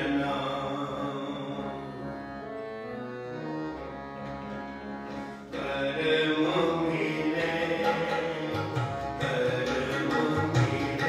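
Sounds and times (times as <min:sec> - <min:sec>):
man chanting: 0:00.0 - 0:01.9, 0:05.6 - 0:11.0
harmonium reed chords: 0:00.0 - 0:11.0.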